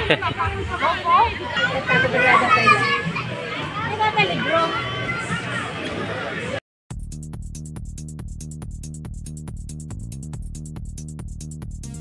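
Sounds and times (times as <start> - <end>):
children shouting and chattering: 0.0 - 6.6.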